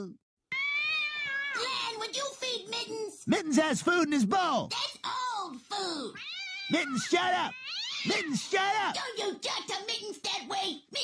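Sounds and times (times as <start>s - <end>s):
cat yowling: 0.5s - 1.9s, 6.1s - 8.5s.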